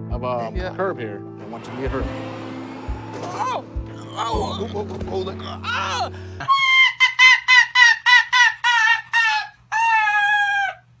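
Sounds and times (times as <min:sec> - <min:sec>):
fox yelping calls: 0:06.5 - 0:11.0.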